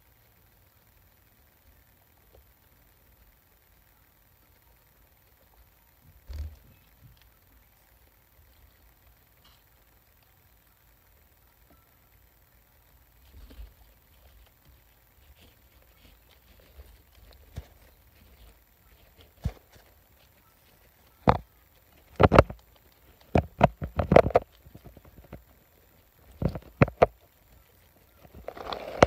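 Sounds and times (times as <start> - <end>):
faint rustles: 1.7 - 29.0.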